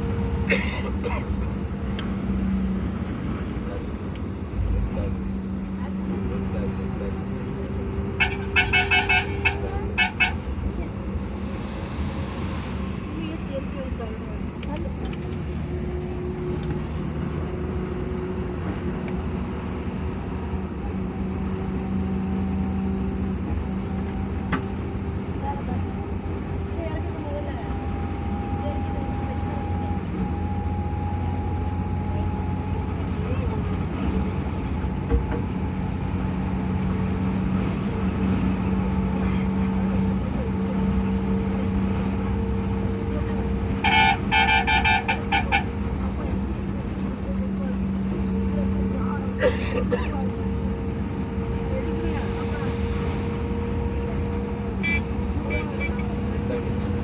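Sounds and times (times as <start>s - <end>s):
vehicle engine running: 0.0s - 57.0s
vehicle horn honks: 8.2s - 10.4s, 43.8s - 45.7s, 54.8s - 55.9s.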